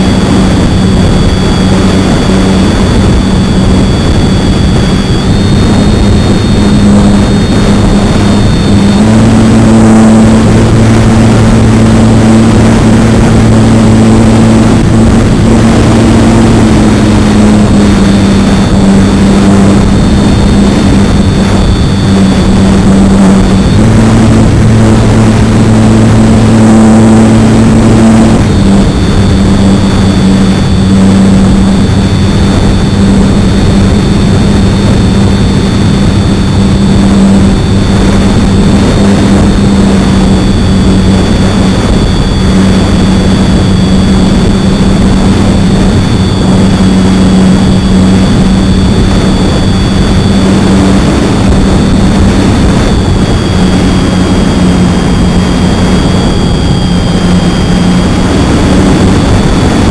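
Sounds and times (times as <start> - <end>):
electric motor and propeller drone: 0.0 - 59.9
wind rush over microphone: 0.0 - 59.9.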